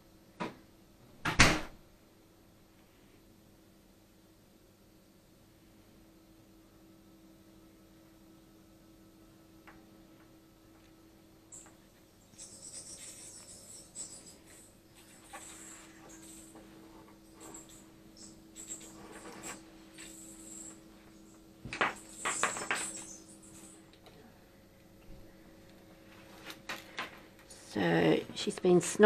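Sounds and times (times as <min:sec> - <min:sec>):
low electrical hum: 0:00.0 - 0:29.0.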